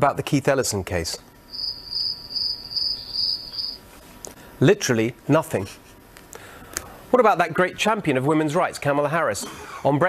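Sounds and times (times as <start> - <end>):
cricket chirping: 1.5 - 3.8.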